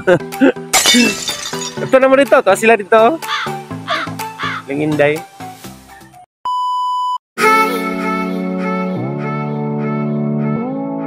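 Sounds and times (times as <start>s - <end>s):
background music: 0.0s - 6.2s.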